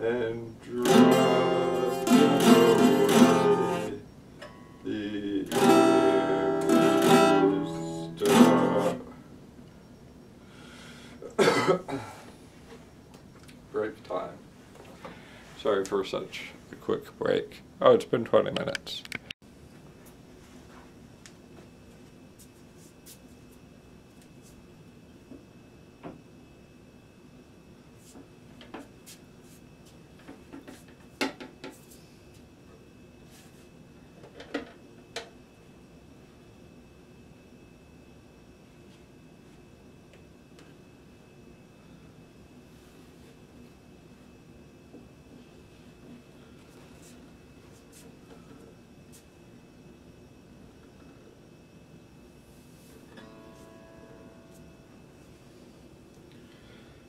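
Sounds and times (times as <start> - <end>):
acoustic guitar chords strummed: 0.7 - 9.1, 53.1 - 55.2.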